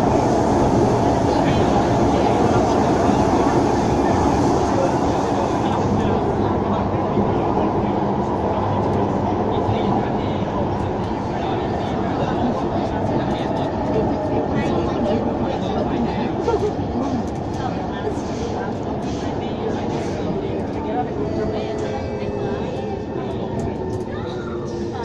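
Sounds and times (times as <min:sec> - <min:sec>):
faint passengers' voices: 0:00.0 - 0:25.0
train rumble: 0:00.0 - 0:25.0.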